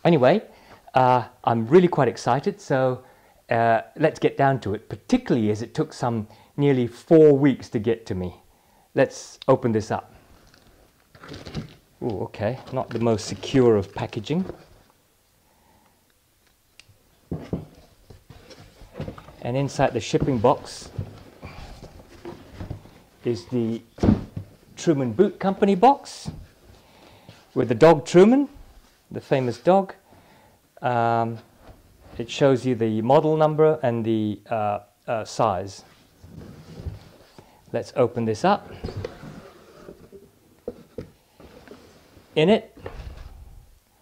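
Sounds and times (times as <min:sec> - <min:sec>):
cardboard knocks and scuffs: 0:17.3 - 0:23.0, 0:24.0 - 0:24.6
cardboard scraping: 0:17.3 - 0:24.5, 0:36.1 - 0:37.4, 0:38.6 - 0:43.6
cardboard flaps thumping: 0:23.9 - 0:24.6.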